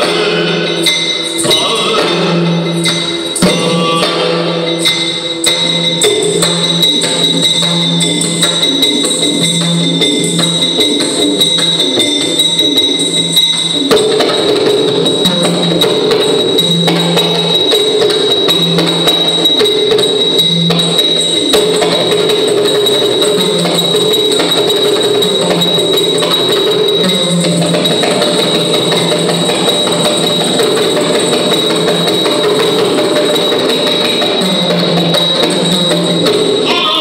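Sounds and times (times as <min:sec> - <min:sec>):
small hand cymbals: 0:00.0 - 0:37.0
barrel drum played by hand: 0:05.6 - 0:36.9.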